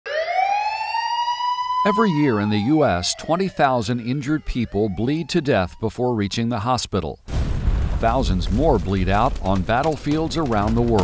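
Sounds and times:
emergency vehicle siren: 0.0s - 6.4s.

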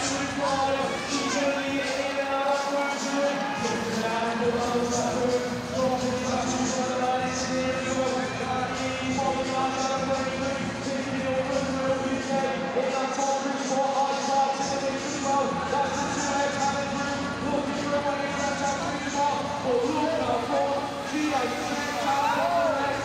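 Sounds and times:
race commentary over public address: 0.0s - 23.0s.

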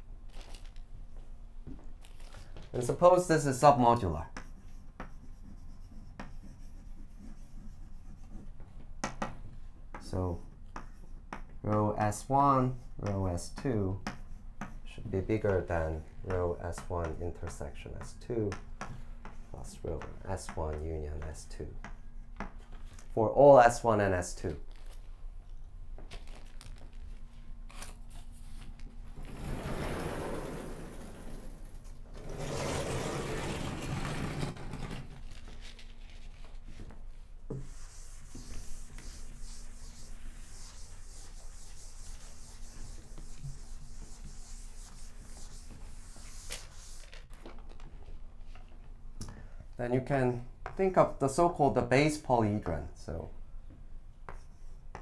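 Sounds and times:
chalk scratching on blackboard: 3.5s - 8.6s, 37.5s - 47.2s
sliding blackboard panels rumbling: 29.1s - 35.3s.

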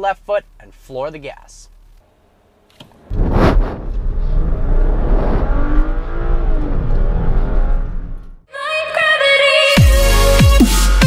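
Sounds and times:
car engine accelerating hard: 2.3s - 8.5s.

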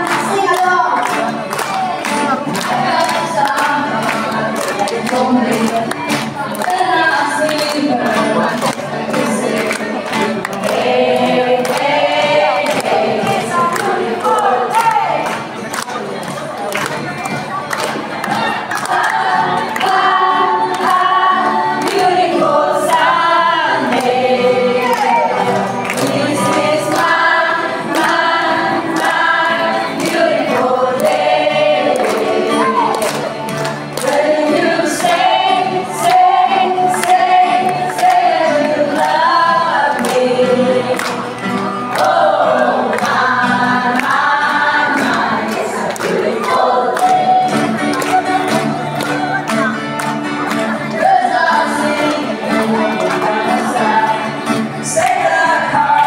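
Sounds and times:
acoustic guitars: 0.0s - 56.0s
group of voices singing: 0.0s - 56.0s.

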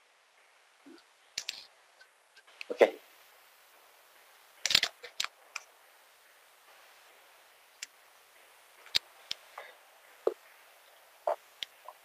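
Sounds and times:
computer mouse and keys clicking: 4.6s - 5.7s.

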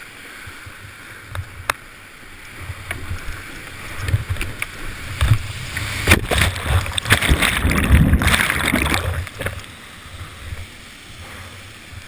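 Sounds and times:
whitewater rushing and splashing: 0.0s - 12.0s
kayak hull knocking on rock: 6.0s - 9.6s.

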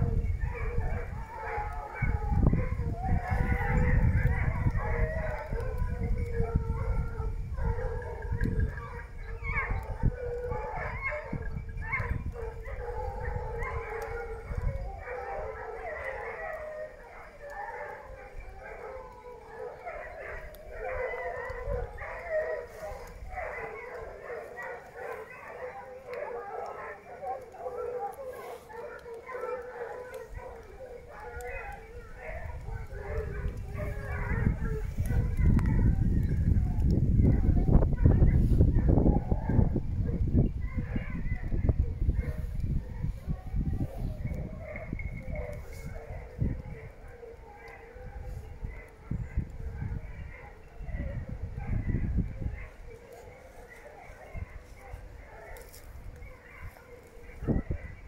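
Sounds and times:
hounds baying in chorus: 0.0s - 58.0s.

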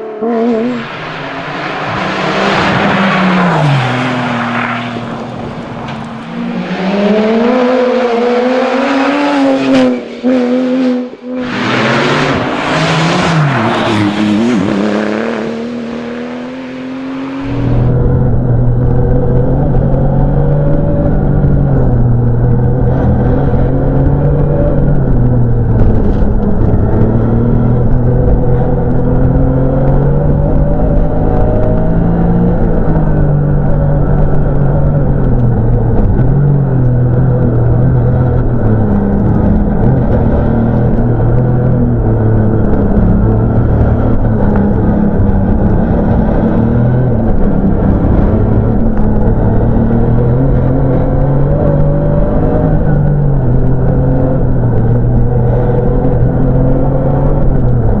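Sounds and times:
rally car engine accelerating: 0.0s - 58.0s.

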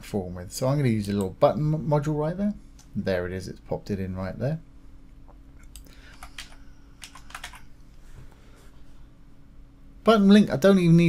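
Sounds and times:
computer keyboard key clicks: 6.1s - 7.6s.

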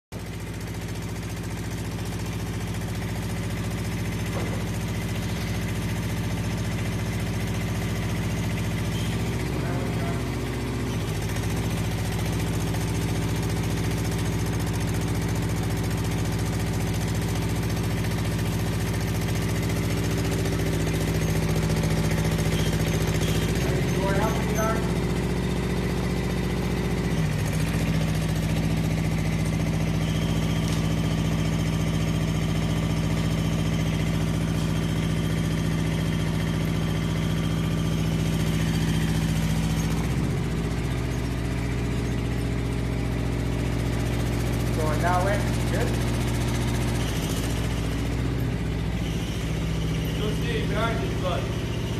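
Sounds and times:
crane engine running: 0.2s - 51.9s.

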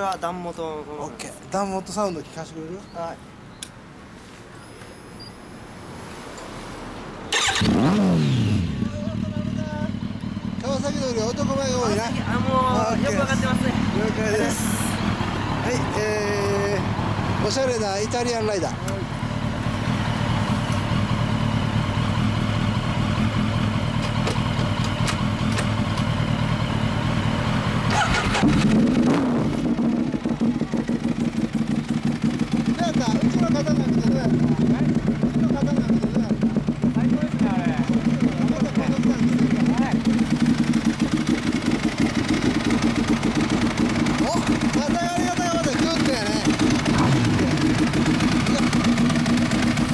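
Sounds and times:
engine starting and revving: 7.3s - 8.8s, 27.9s - 30.0s, 45.8s - 49.9s
motorcycle engine idling: 8.3s - 28.9s, 29.5s - 49.9s.

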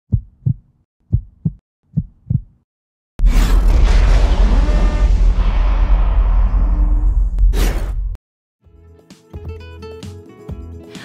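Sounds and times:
heartbeat thumps: 0.1s - 2.6s.

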